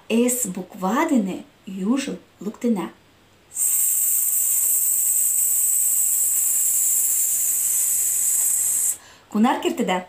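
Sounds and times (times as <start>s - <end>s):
woman hissing breath through teeth: 3.5s - 9.2s.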